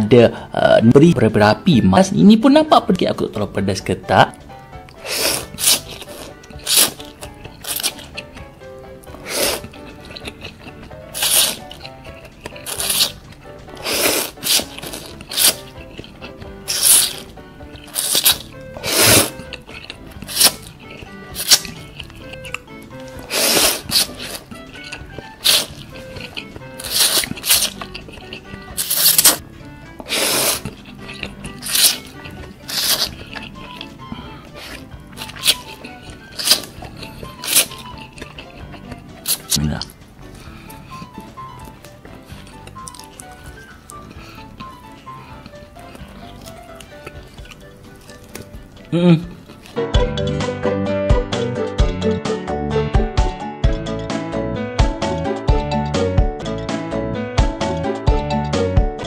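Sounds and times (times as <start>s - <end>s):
background music: 0.0s - 59.0s
person slurping noodles: 4.9s - 8.3s, 9.1s - 49.8s
mouth sounds: 30.0s - 41.8s, 48.4s - 50.4s.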